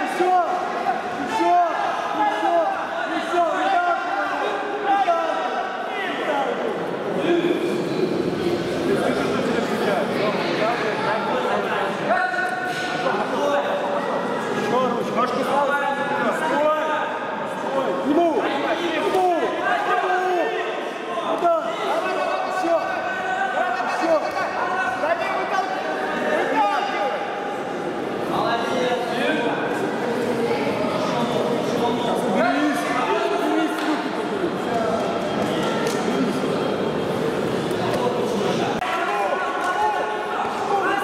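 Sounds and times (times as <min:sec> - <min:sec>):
crowd shouting in a hall: 0:00.0 - 0:41.0.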